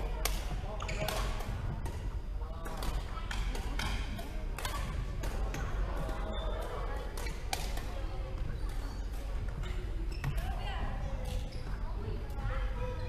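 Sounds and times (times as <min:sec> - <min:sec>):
rackets hitting shuttlecock: 0:00.1 - 0:08.5.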